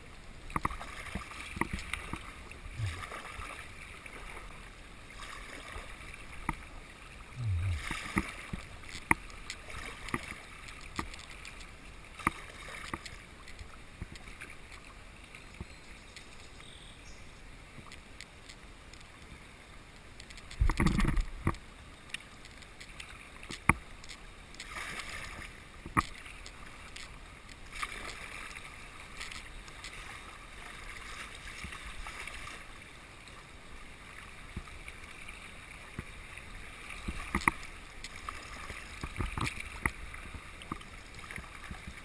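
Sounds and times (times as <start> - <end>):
paddle blades splashing: 0.0 - 42.0
river water running past hull: 0.0 - 42.0.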